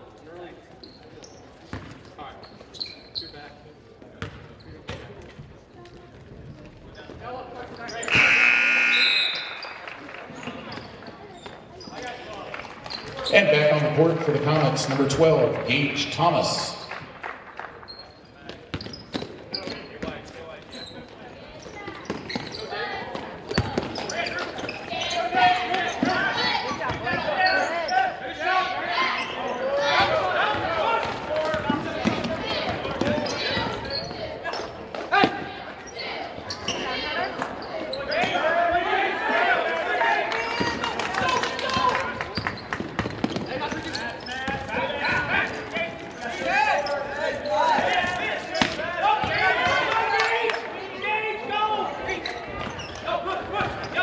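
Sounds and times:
echoing hubbub of voices: 3.5s - 54.0s.

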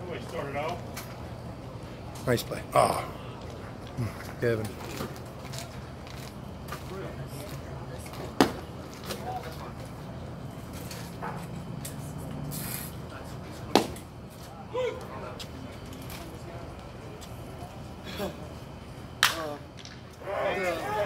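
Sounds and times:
faint crowd chatter: 0.0s - 21.0s
baseball smacking into leather mitt: 13.7s - 14.0s.

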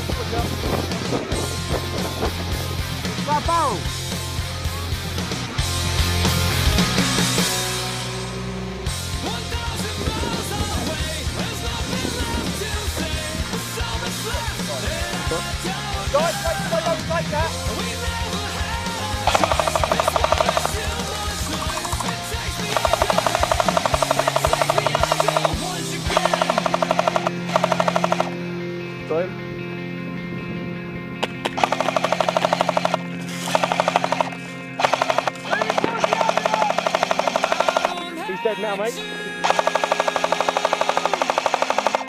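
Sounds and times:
rock music: 0.0s - 42.0s
airsoft machine gun bursts: 19.2s - 28.4s, 31.6s - 38.1s, 39.4s - 42.0s.

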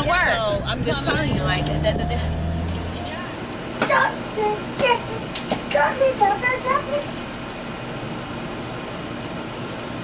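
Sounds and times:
woman's voice: 0.0s - 4.2s
car cabin engine and road noise: 0.0s - 8.9s.

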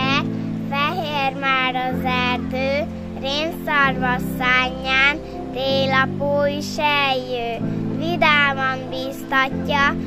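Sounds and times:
instrumental music with sustained chords: 0.0s - 10.0s.

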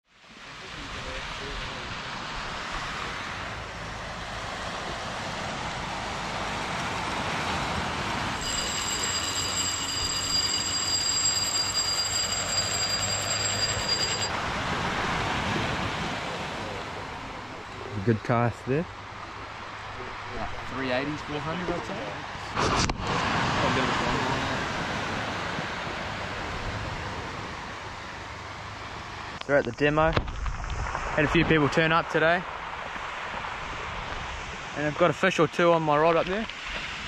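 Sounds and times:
rushing surf: 0.2s - 37.0s
high-pitched whine: 8.4s - 14.5s.

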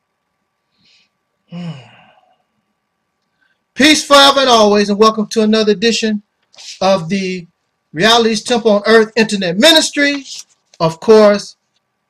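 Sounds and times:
man sighing: 1.5s - 2.3s.

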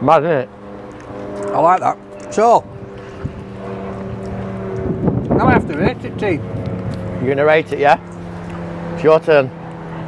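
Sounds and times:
vehicle engine at low revs: 0.0s - 10.0s.

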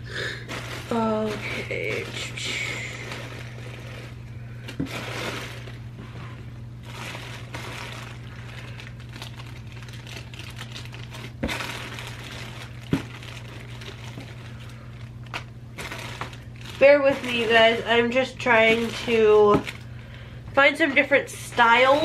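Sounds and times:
plastic bags crinkling: 0.0s - 22.0s
steady low hum: 0.0s - 22.0s.

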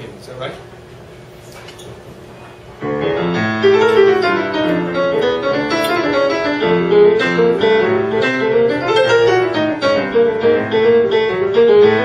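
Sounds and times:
solo jazz piano: 2.3s - 12.0s.

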